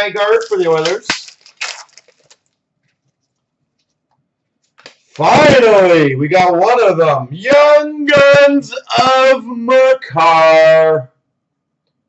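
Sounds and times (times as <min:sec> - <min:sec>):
cards rustling: 0:00.0 - 0:04.0, 0:04.6 - 0:05.5.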